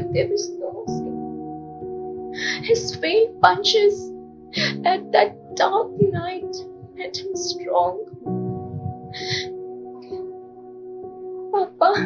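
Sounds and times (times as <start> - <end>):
soft background music chord: 0.0 - 12.0.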